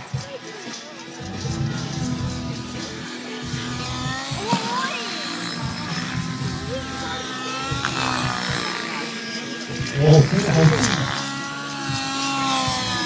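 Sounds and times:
background music: 0.0 - 13.0
rc helicopter engine: 0.0 - 13.0.

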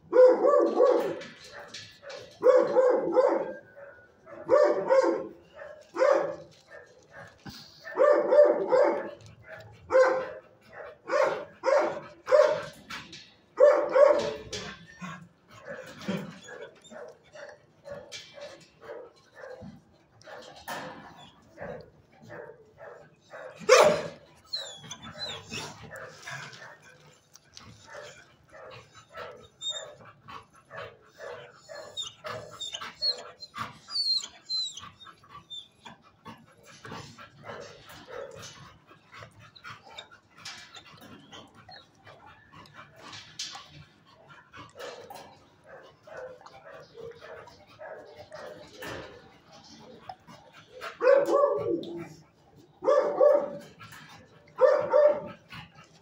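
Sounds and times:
dogs barking and yipping: 0.0 - 56.0.

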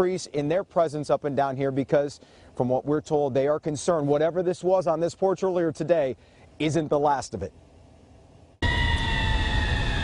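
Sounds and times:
emergency vehicle siren: 8.6 - 10.0.

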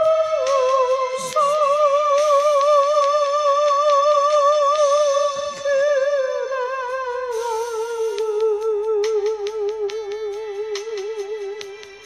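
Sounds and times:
high voice singing with vibrato: 0.0 - 12.0
karaoke backing track: 0.0 - 12.0.

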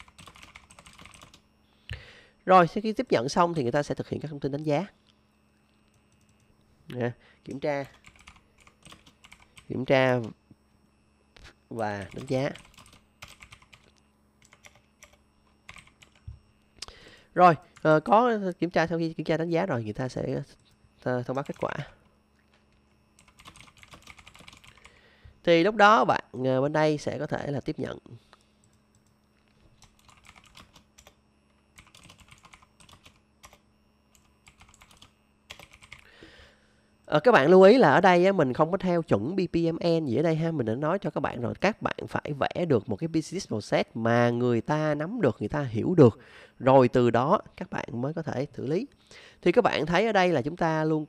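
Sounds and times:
faint keyboard typing: 0.0 - 1.4, 5.8 - 6.5, 7.5 - 10.4, 12.0 - 16.4, 20.6 - 22.0, 22.6 - 25.0, 28.4 - 36.1.

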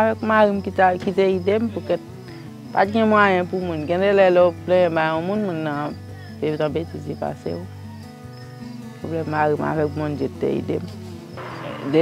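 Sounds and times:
woman speaking: 0.0 - 2.0, 2.7 - 7.7, 9.0 - 10.9, 11.8 - 12.0.

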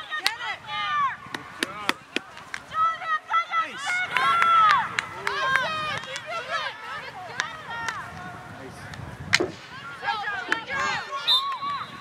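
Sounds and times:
hockey sticks clacking: 0.1 - 0.4, 1.3 - 2.8, 3.9 - 6.7, 7.3 - 8.2, 8.8 - 10.7
stick striking ball: 9.3 - 9.6.

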